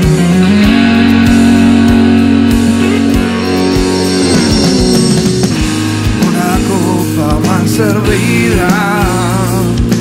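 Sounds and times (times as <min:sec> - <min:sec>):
distorted electric guitars: 0:00.0 - 0:10.0
drum kit beat: 0:00.0 - 0:10.0.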